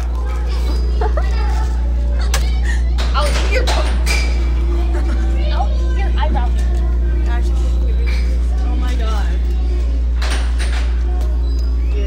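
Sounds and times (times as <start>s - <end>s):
constant low hum: 0.0s - 12.0s
young voices talking: 0.0s - 12.0s.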